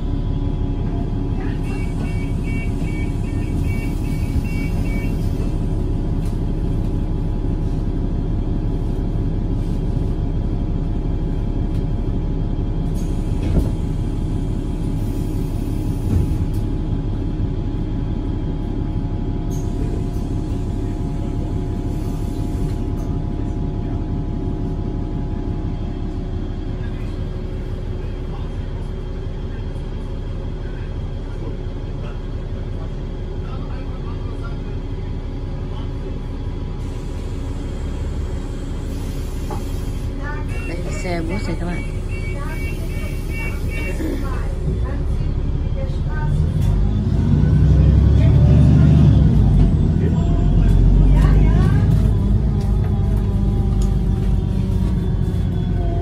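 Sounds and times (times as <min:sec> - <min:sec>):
bus engine drone: 0:00.0 - 0:56.0.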